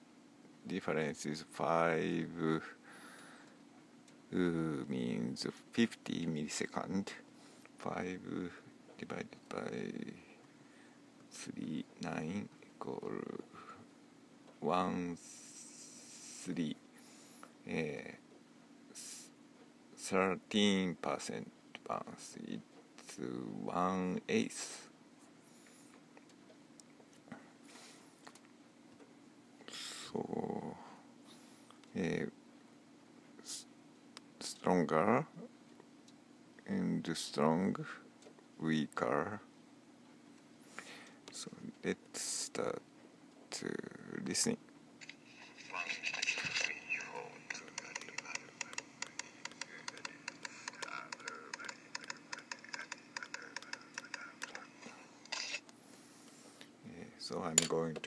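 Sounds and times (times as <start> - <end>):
light tapping through small speaker: 45.0 - 55.0
faint voice: 45.6 - 55.2.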